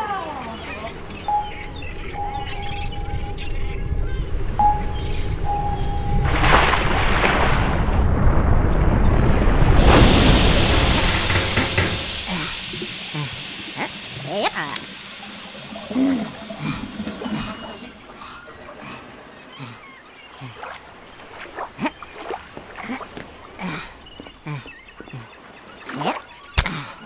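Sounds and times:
steady tone: 1.2s - 6.6s, 9.8s - 18.6s
bubbling water noise: 3.8s - 19.0s
high hiss: 9.7s - 18.5s.

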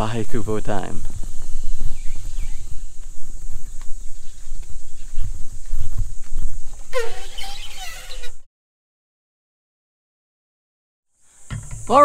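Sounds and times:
faint footsteps: 0.0s - 8.4s
wind rumble on microphone: 0.0s - 8.4s.

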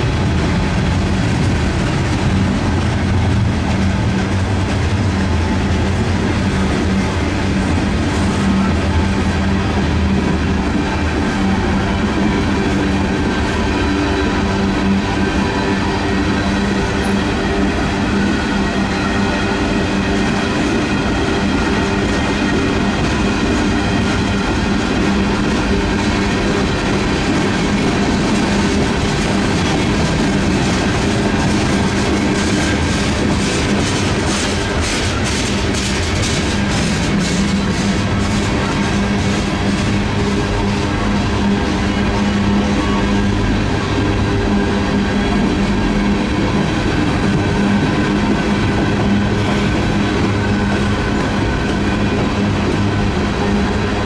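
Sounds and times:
freight train wheels on rail: 0.0s - 54.0s.

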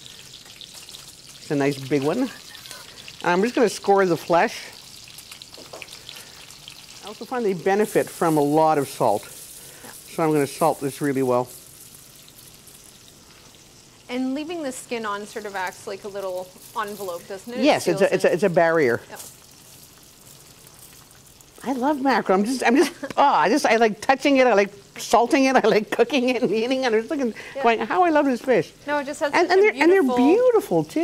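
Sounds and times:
vegetables sizzling in a frying pan: 0.0s - 31.0s.

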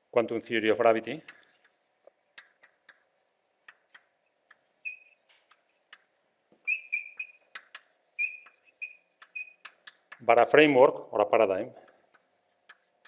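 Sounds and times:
chalk scratching on blackboard: 1.0s - 10.3s, 11.8s - 13.0s
chalk squeaks: 1.3s - 10.3s, 11.9s - 13.0s.

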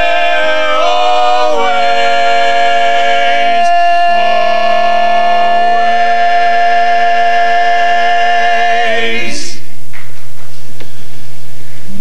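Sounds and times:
men singing a cappella chord: 0.0s - 9.6s.

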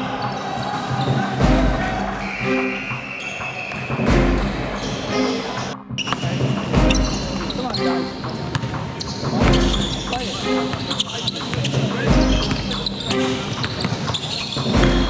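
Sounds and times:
players' voices: 0.0s - 15.0s.

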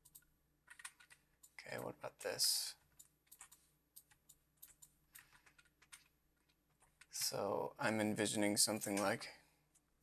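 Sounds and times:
faint computer clicking: 0.0s - 7.4s.

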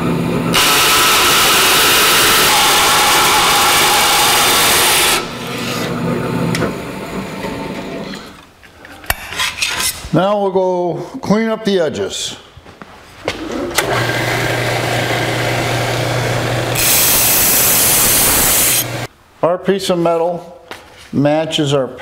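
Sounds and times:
bandsaw cutting sheet metal: 0.5s - 6.7s, 13.8s - 19.1s.

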